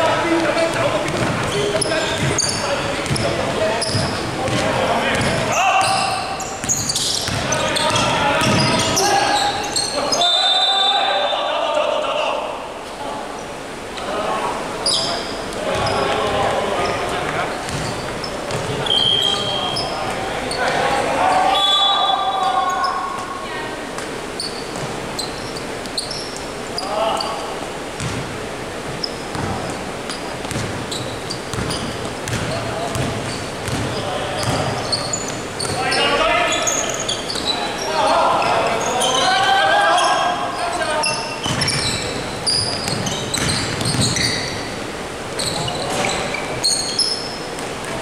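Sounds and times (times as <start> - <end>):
players calling out: 0.0 - 12.8, 14.0 - 27.7, 31.0 - 47.4
basketball bouncing: 0.4 - 9.0, 17.6 - 18.8, 24.7 - 25.0, 28.0 - 28.3, 28.9 - 35.8, 41.4 - 42.0, 42.7 - 44.3
sneaker squeaks: 0.4 - 11.3, 14.8 - 23.4, 24.3 - 28.3, 28.9 - 48.0.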